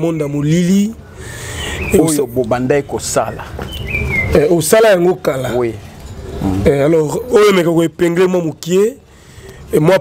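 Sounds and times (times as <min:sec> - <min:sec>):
man speaking: 0:00.0 - 0:01.0, 0:01.9 - 0:03.6, 0:04.3 - 0:09.1, 0:09.7 - 0:10.0
high bird whistle: 0:03.6 - 0:04.5.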